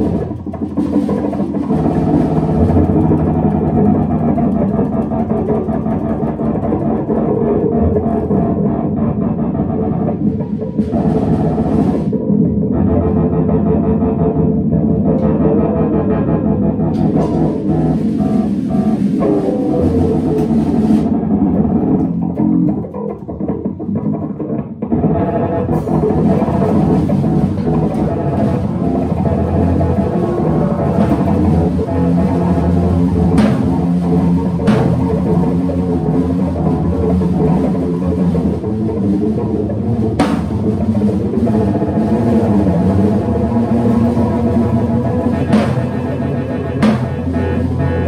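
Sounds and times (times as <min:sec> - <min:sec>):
double bass lines: 0:00.0 - 0:48.0
electric guitar: 0:00.0 - 0:48.0.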